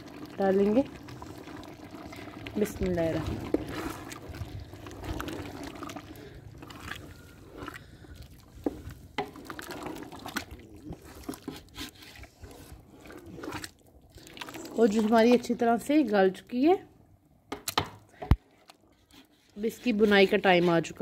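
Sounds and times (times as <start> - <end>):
food frying and bubbling: 0.0 - 21.0.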